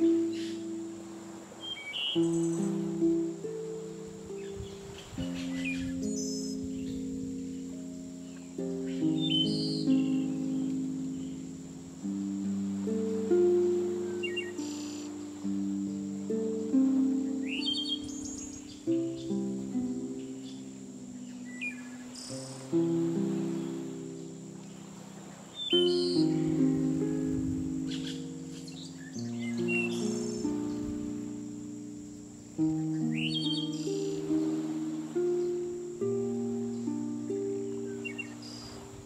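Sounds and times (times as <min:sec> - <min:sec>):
slow harp music: 0:00.0 - 0:39.0
thin steady high tone: 0:00.0 - 0:39.0
bird chirps: 0:01.6 - 0:02.9, 0:04.3 - 0:11.4, 0:14.0 - 0:16.0, 0:17.3 - 0:19.5, 0:20.2 - 0:23.8, 0:24.8 - 0:26.6, 0:27.9 - 0:31.0, 0:32.8 - 0:34.7, 0:37.7 - 0:39.0.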